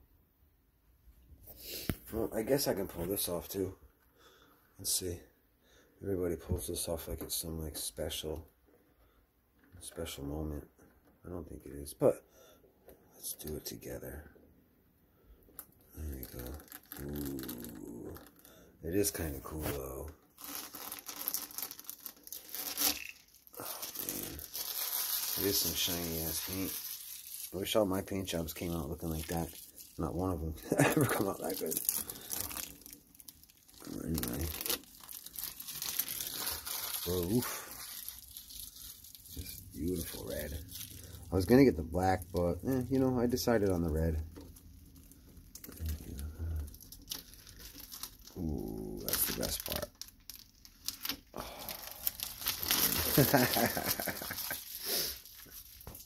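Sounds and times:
plastic film crinkling: 15.5 - 56.0.

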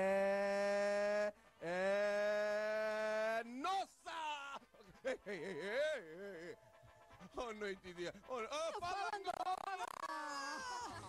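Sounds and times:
person holding long note: 0.0 - 3.3.

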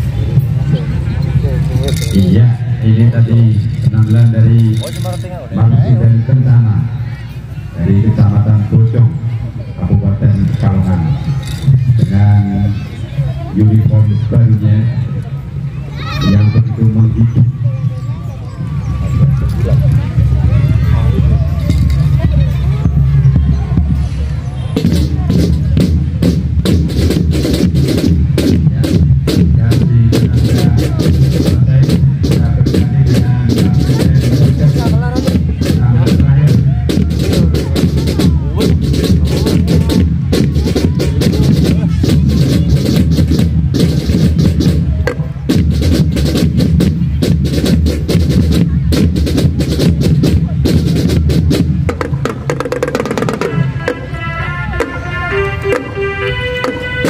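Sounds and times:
marching drumline cadence: 0.0 - 57.0
melodic band instruments: 0.0 - 57.0.

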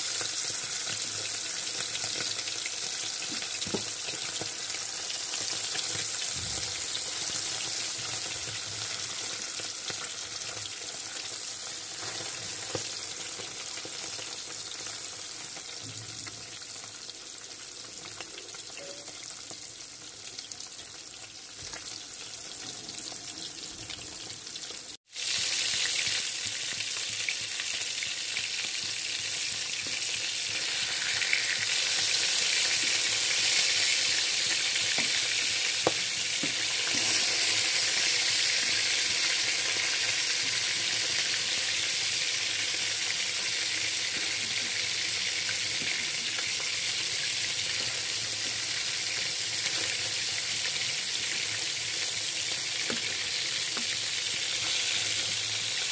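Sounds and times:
fish frying in hot oil: 0.0 - 55.9.

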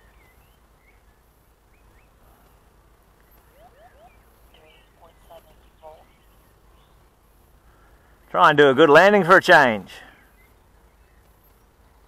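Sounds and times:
birds chirping and whistling: 0.0 - 7.2, 10.0 - 12.0.

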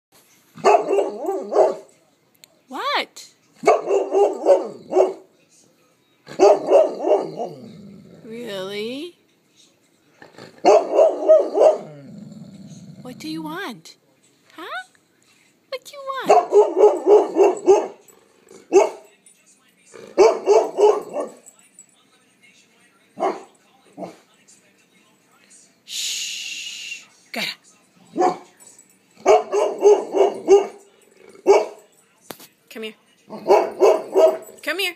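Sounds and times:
dog bark-like vocalizing: 6.3 - 7.6, 10.5 - 12.1, 16.2 - 18.0, 20.0 - 21.4, 29.2 - 31.8, 33.3 - 34.5.

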